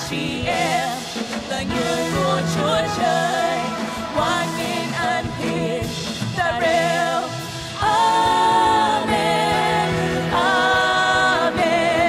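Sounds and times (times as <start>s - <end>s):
group singing gospel praise song: 0.0s - 12.0s
instrumental backing: 0.1s - 12.0s.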